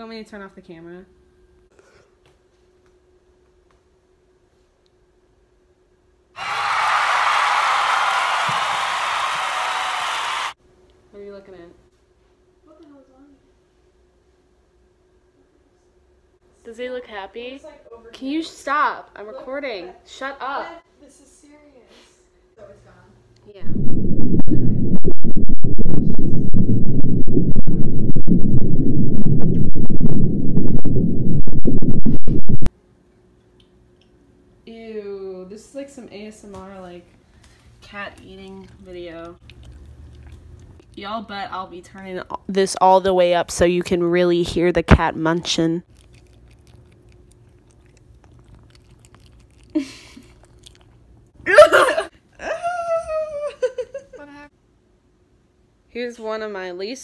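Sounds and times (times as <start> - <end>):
loud distorted low rumble: 23.6 - 32.7
cat crunching dry kibble: 45.9 - 51.0.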